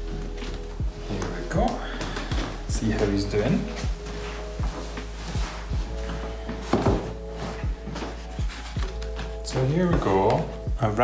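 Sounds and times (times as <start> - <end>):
background music with low beat: 0.0 - 11.0
box knocking on wooden table: 6.7 - 7.1.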